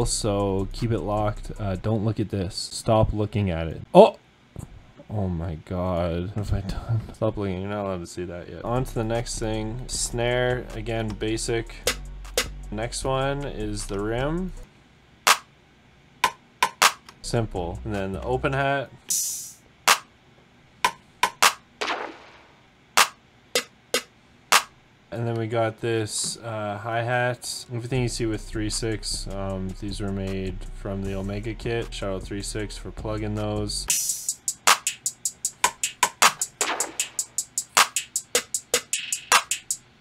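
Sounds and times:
trap hi-hat ticks: 0.0s - 1.9s, 8.7s - 14.6s, 28.0s - 39.8s.

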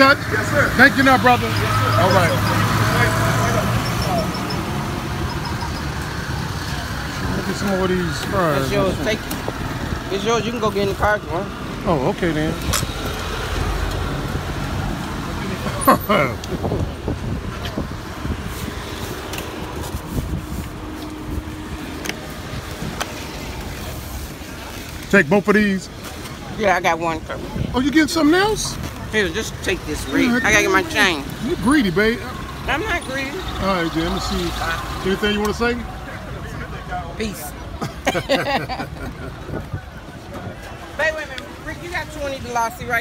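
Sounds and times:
road traffic and engine noise: 0.0s - 43.0s.

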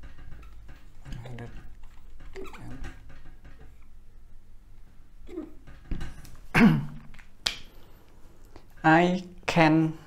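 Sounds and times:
marker squeaking on whiteboard: 0.0s - 4.0s.

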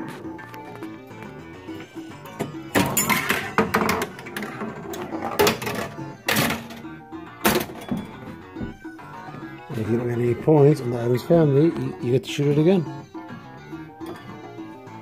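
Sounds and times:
pinball game music: 0.0s - 15.0s
pinball hits and sound effects: 2.4s - 8.4s.

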